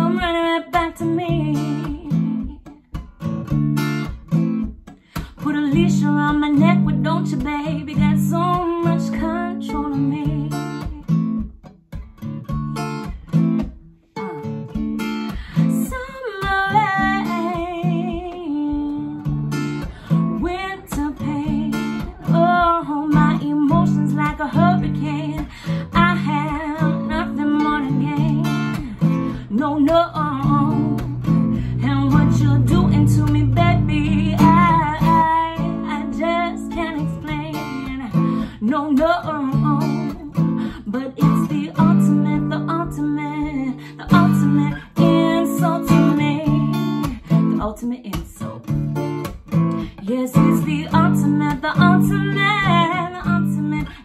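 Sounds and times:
woman singing: 0.0s - 3.0s, 5.2s - 11.4s, 15.2s - 49.1s, 49.8s - 54.0s
acoustic guitar strumming chords: 0.0s - 54.0s.

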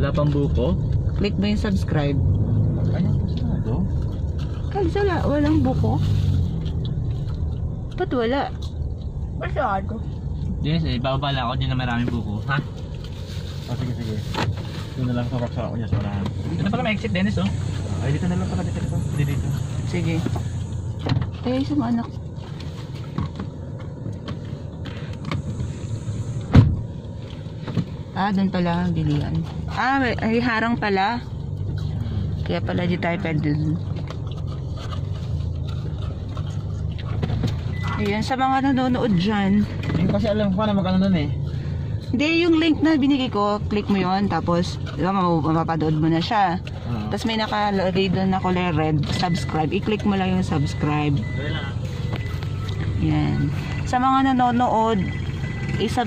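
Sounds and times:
car engine and tyres rumbling: 0.0s - 56.0s
sharp thump: 26.5s - 26.8s.

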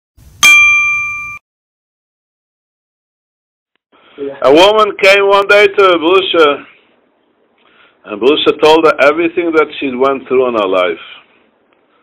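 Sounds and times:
bell-like chime ding: 0.4s - 1.4s.

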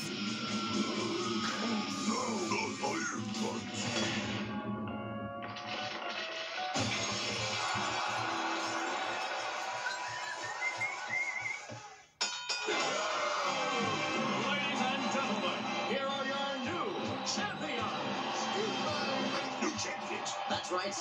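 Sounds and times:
crowd cheering: 0.0s - 3.0s, 6.6s - 12.0s, 12.6s - 21.0s
crash with shattering debris: 6.8s - 9.8s.

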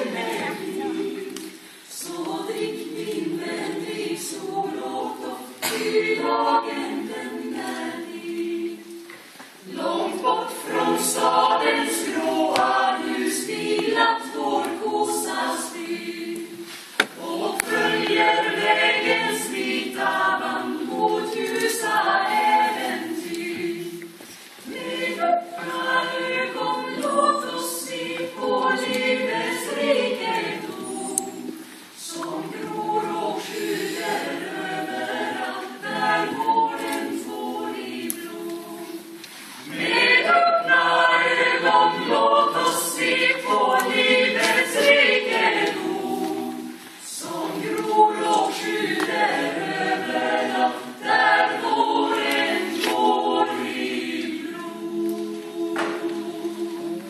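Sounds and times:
mixed choir singing a cappella: 0.0s - 57.0s.

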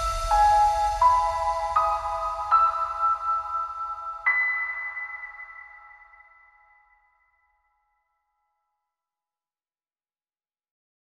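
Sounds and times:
bell-like chime tones: 0.0s - 7.3s.

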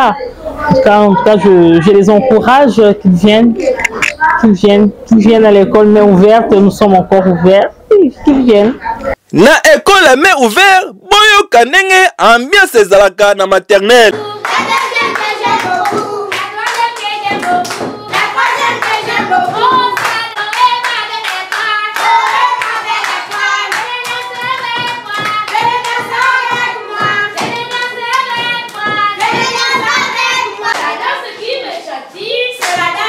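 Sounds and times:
children and adults singing: 14.0s - 33.0s
hands clapping: 14.4s - 31.0s, 32.6s - 33.0s.

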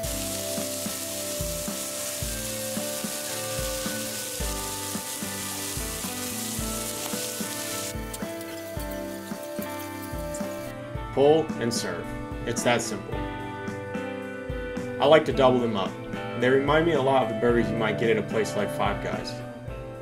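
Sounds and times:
burger patties sizzling on griddle: 0.0s - 10.7s
background music with beat: 0.0s - 17.8s.

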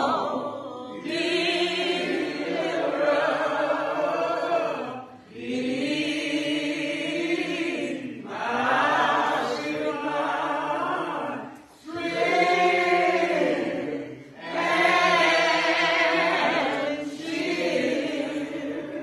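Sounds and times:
group of voices singing: 0.0s - 19.0s.

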